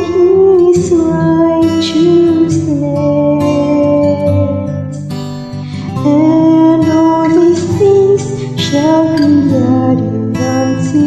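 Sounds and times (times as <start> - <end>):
acoustic guitar: 0.0 - 11.0
woman singing slow worship song: 0.0 - 11.0.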